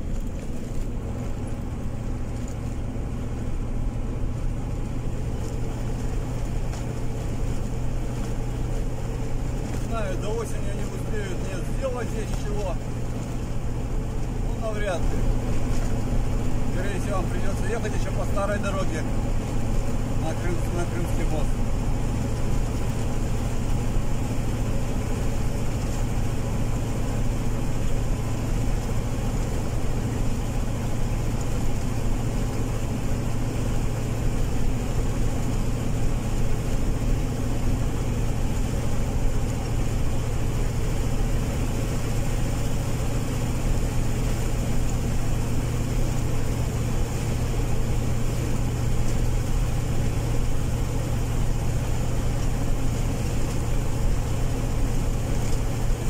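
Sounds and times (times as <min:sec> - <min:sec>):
car engine hum: 0:00.0 - 0:56.0
tyre and road noise: 0:00.0 - 0:56.0.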